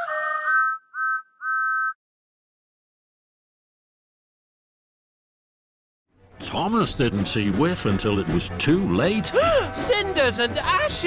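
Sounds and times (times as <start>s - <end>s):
music: 6.1s - 11.0s.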